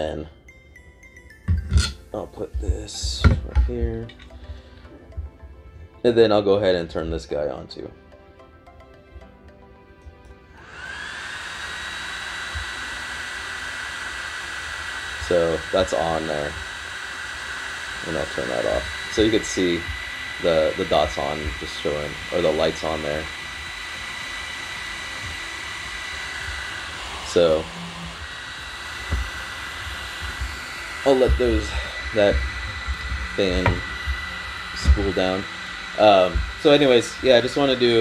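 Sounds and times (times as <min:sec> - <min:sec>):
cooling fan whining: 0:00.0 - 0:38.0.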